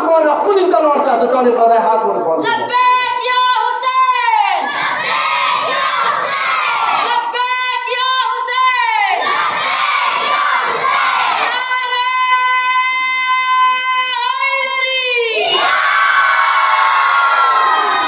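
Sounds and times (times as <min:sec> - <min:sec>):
man shouting through loudspeakers: 0:00.0 - 0:04.7, 0:07.0 - 0:09.2, 0:11.5 - 0:15.4
crowd shouting in unison: 0:04.5 - 0:07.2, 0:09.1 - 0:12.0, 0:15.3 - 0:18.0.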